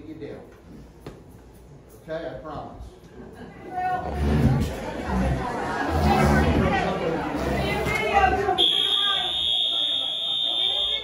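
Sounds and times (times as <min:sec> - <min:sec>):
people talking: 0:03.4 - 0:11.0
fire alarm tone: 0:08.6 - 0:11.0.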